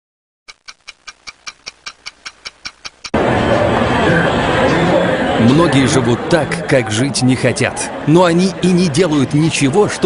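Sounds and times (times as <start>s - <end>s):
rapid clock-like ticking: 0.5s - 3.2s.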